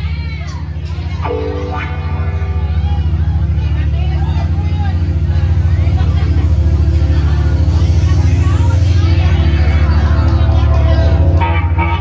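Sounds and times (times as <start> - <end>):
amplified band low drone: 0.0 - 12.0.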